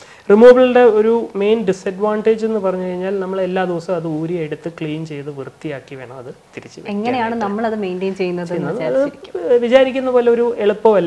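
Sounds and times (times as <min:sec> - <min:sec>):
person talking: 0:03.0 - 0:10.1.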